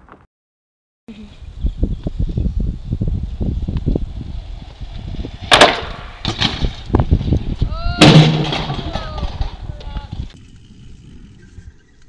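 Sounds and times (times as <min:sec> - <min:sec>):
bicycle crashing onto pavement: 0:08.0 - 0:09.6.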